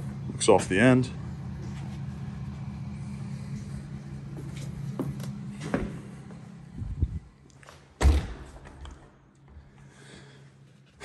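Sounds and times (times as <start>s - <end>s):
low motor hum: 0.0s - 11.0s
footsteps on hardwood floor: 4.3s - 6.4s
door shutting with heavy thud: 8.0s - 8.7s.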